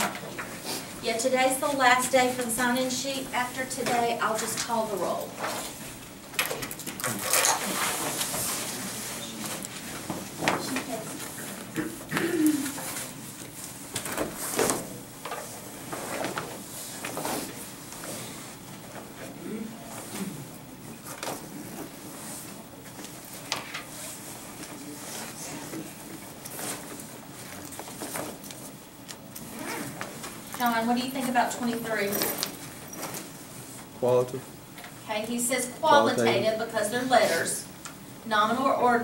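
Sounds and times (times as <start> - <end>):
rustles and knocks at desks: 0.0 - 1.0, 1.8 - 20.4, 21.0 - 34.0
faint murmur of voices: 18.1 - 23.2
low murmured voice: 19.2 - 21.0.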